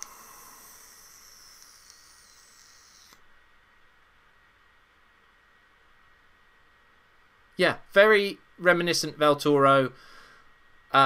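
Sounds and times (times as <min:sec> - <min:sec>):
electronic cigarette puff hiss: 0:00.0 - 0:03.3.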